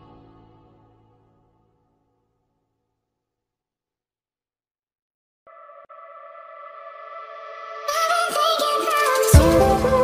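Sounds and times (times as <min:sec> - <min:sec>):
background music: 0:00.0 - 0:01.7, 0:06.8 - 0:10.0.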